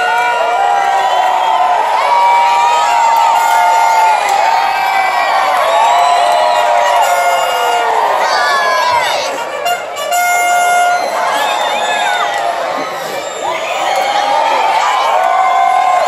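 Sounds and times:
crowd cheering and yelling: 0:00.0 - 0:16.0.

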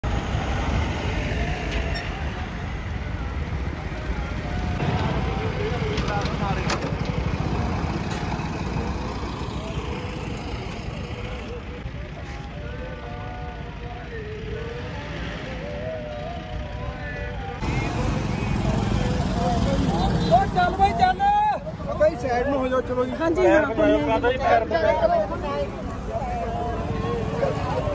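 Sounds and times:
highway vehicles: 0:00.0 - 0:27.9
voices close by: 0:00.3 - 0:27.9.

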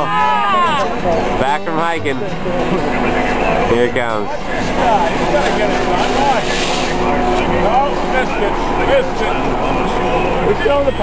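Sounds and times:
indistinct voices talking: 0:00.0 - 0:11.0
steady mechanical hum: 0:00.0 - 0:11.0.

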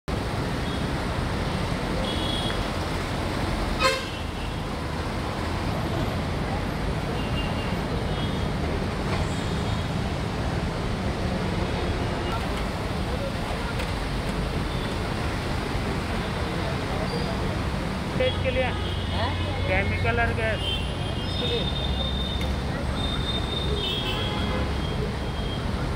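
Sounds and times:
street traffic: 0:00.0 - 0:25.9
vehicle horn toot: 0:03.8 - 0:04.4.

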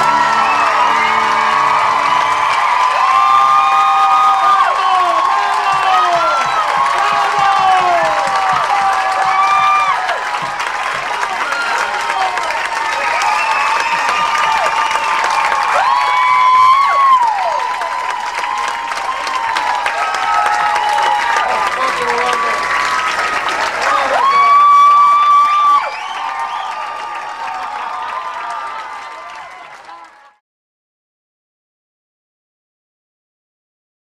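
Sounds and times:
audience applauding and cheering: 0:00.0 - 0:30.4
crowd whooping: 0:00.0 - 0:30.4.

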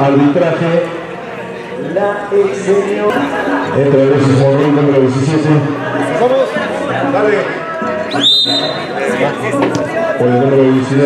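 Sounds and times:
spectators chattering: 0:00.0 - 0:11.0
referee's whistle blast: 0:08.1 - 0:08.9.

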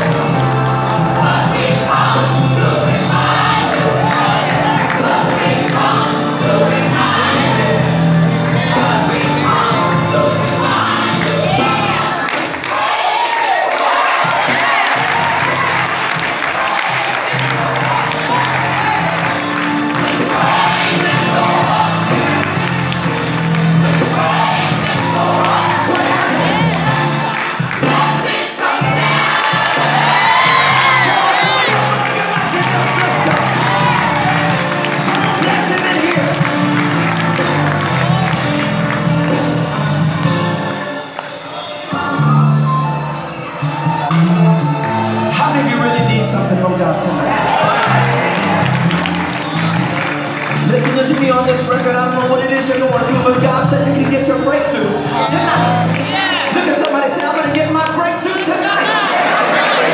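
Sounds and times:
crowd cheering and shouting: 0:00.0 - 0:59.9
gospel song with bass: 0:00.0 - 0:59.9.

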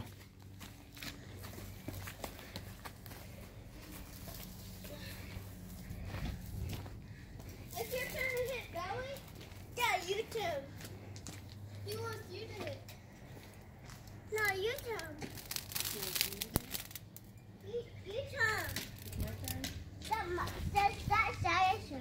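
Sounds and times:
distant children calling out: 0:01.2 - 0:16.2.

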